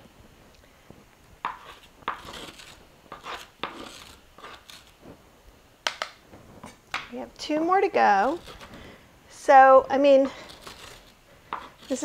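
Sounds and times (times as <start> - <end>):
metal spoon scraping squash: 1.4 - 5.0, 7.4 - 12.0.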